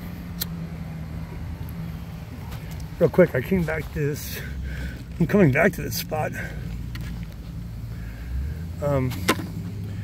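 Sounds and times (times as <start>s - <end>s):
vehicle engine humming: 0.0s - 10.0s.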